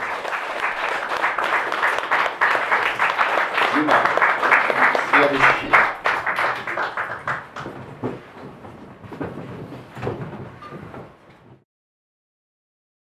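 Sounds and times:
audience applause: 0:00.0 - 0:08.1.

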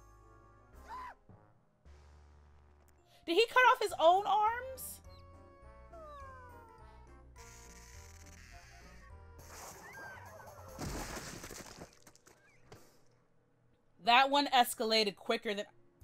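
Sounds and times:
cartoon background music: 0:00.0 - 0:13.0
squeaky character voices: 0:05.9 - 0:09.1
falling squeak: 0:07.4 - 0:10.8
crash and splatter effect: 0:10.8 - 0:12.2.

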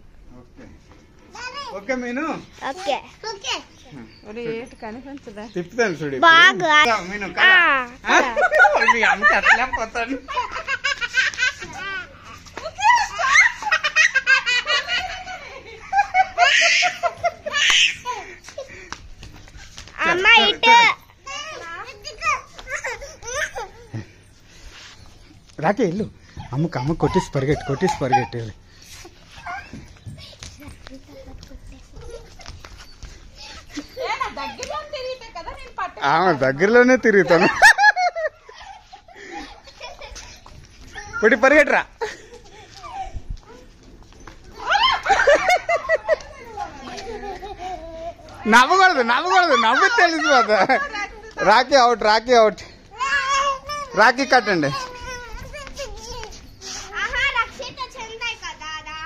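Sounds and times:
people laughing hard: 0:08.1 - 0:18.9, 0:37.2 - 0:40.5, 0:44.6 - 0:48.2
quiet giggles: 0:26.3 - 0:34.7, 0:38.0 - 0:41.0, 0:45.3 - 0:48.4.

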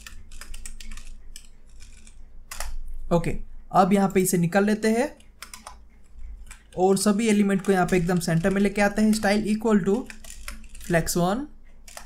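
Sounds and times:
computer keyboard typing: 0:00.0 - 0:02.9, 0:04.0 - 0:12.0.

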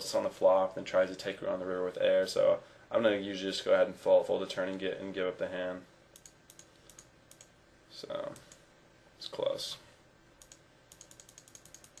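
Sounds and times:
faint computer clicking: 0:06.1 - 0:07.6, 0:08.2 - 0:08.7, 0:10.4 - 0:12.0.

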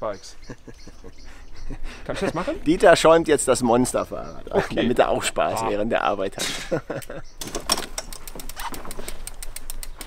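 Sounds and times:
bicycle freewheel hub ticking: 0:08.0 - 0:10.0.

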